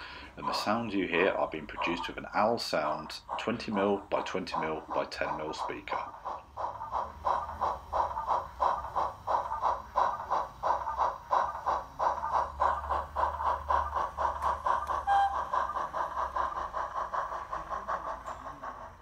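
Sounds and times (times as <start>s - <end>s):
model steam engine chuffing: 0.0s - 19.0s.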